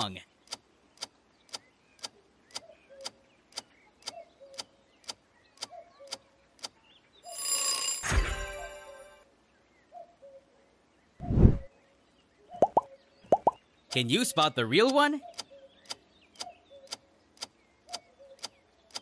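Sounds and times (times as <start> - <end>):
bright bell-like chime: 7.3 - 9.2
whoosh: 11.2 - 11.7.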